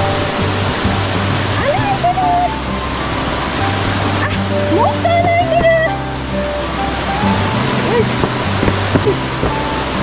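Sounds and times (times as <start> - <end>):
background music: 0.0 - 10.0
stream rushing over rocks: 0.0 - 10.0.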